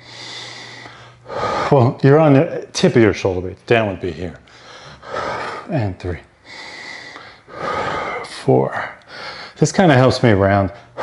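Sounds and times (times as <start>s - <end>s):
man breathing hard through mouth: 0.0s - 1.8s, 4.5s - 5.7s, 6.4s - 8.3s, 9.1s - 9.6s.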